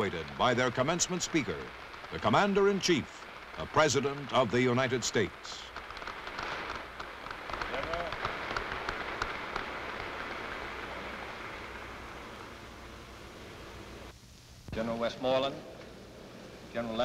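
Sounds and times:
audience applauding: 0:00.0 - 0:12.6.

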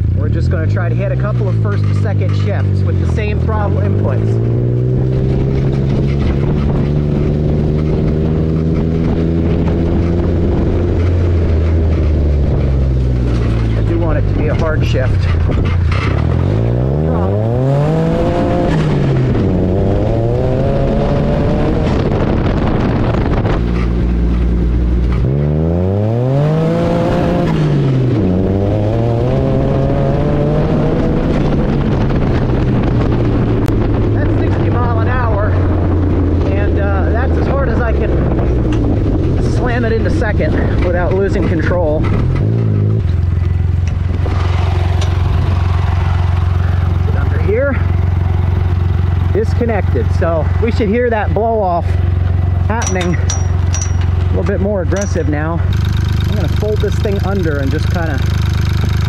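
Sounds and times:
turbocharged engine revving: 0:00.0 - 0:59.0.

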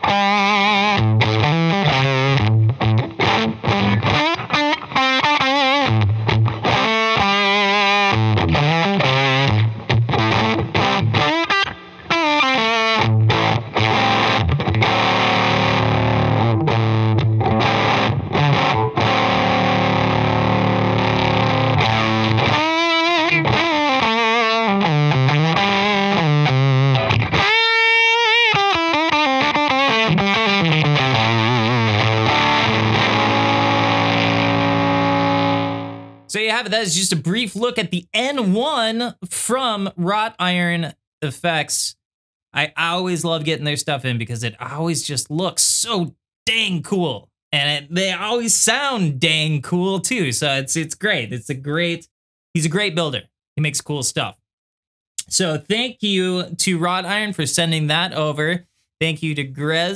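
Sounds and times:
distorted electric guitar: 0:00.0 - 0:36.4.

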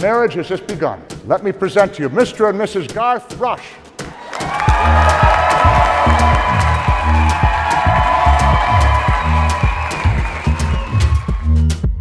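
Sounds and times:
music with bass beat: 0:04.0 - 0:12.0
crowd applauding and cheering: 0:04.1 - 0:12.0.

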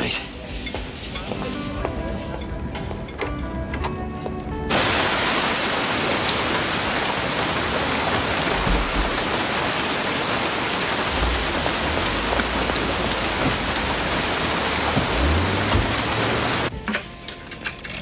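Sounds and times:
heavy rain pouring: 0:00.1 - 0:16.7
low rumbles: 0:00.1 - 0:16.8.

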